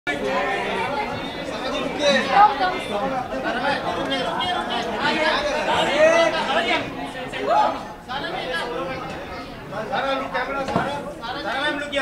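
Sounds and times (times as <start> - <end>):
several people talking at once: 0.1 - 12.0.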